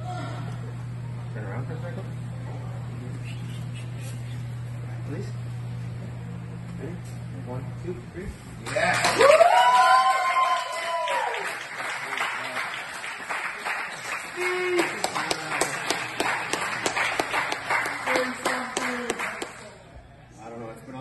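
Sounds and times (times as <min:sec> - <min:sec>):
group clapping: 0:08.6 - 0:19.9
people shouting and cheering: 0:08.7 - 0:11.6, 0:14.3 - 0:15.4.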